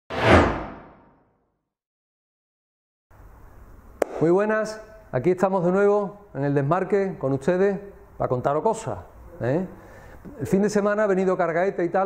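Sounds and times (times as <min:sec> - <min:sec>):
deep whoosh: 0:00.1 - 0:01.1.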